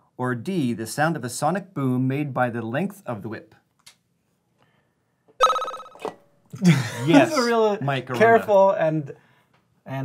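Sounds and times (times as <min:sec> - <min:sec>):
quiz buzzer electronic ring: 0:05.4 - 0:06.0.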